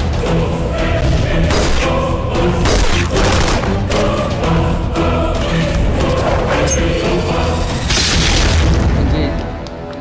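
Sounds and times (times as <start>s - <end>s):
trailer background music: 0.0s - 10.0s.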